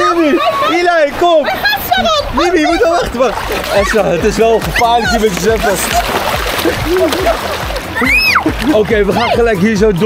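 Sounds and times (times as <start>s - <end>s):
pool water splashing: 0.0s - 10.0s.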